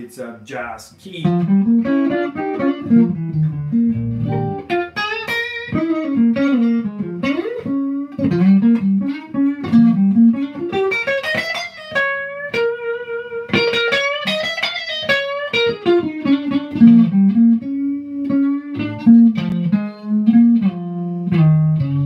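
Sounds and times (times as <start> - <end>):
clean electric guitar lines: 0.0 - 22.0.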